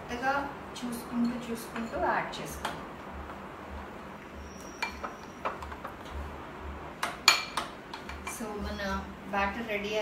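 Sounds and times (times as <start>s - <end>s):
spoon clinking against glass bowl: 4.7s - 5.4s.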